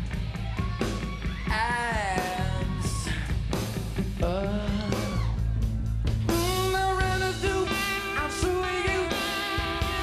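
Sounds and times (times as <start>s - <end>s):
rock band playing live: 0.0s - 10.0s
male lead vocal singing: 4.0s - 5.4s, 6.3s - 10.0s.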